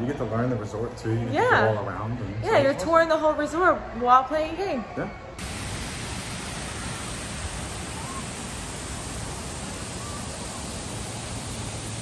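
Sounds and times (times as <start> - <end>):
waterfall rushing over rocks: 5.4 - 12.0.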